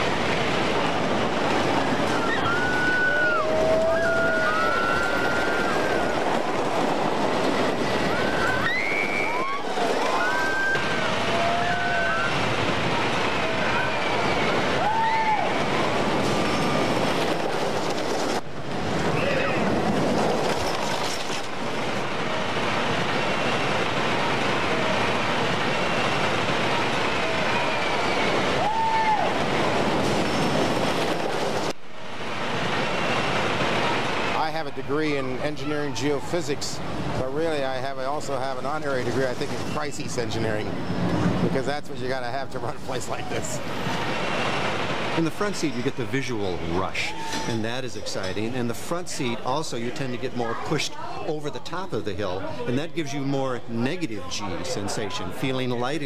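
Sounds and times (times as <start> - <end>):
roller coaster rumbling on track: 0.0 - 56.0
riders screaming and yelling: 2.0 - 17.0, 23.5 - 30.0, 46.9 - 47.6.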